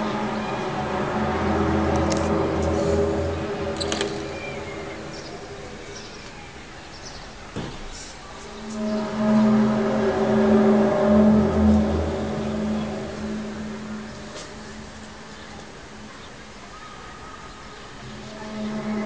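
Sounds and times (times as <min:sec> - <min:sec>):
low steady tone with overtones: 0:00.0 - 0:06.9, 0:08.2 - 0:19.0.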